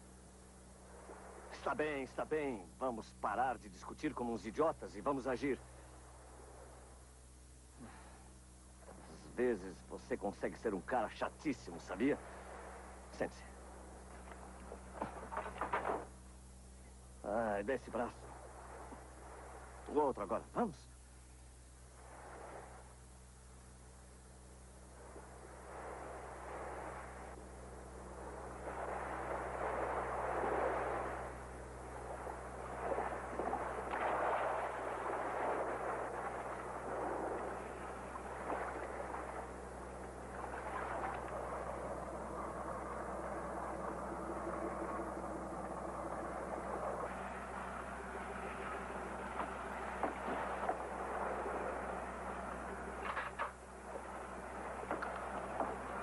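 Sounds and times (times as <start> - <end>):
boat engine idling: 0.0 - 56.0
water slapping against hull: 14.0 - 16.2, 18.1 - 20.0, 25.0 - 56.0.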